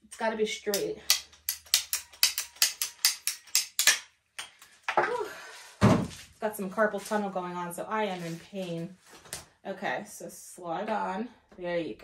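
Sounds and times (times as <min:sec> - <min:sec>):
ratcheting pipe cutter clicking: 0:00.7 - 0:04.0.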